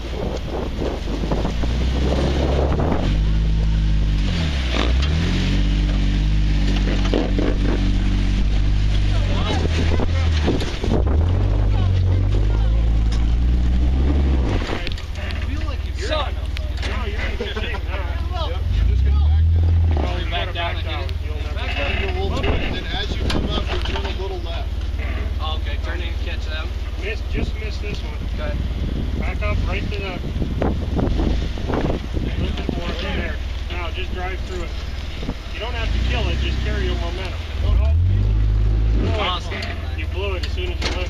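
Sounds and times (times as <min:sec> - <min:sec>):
engine running at low revs: 0:00.0 - 0:41.0
low rumble: 0:00.0 - 0:41.0
voices talking: 0:00.0 - 0:41.0.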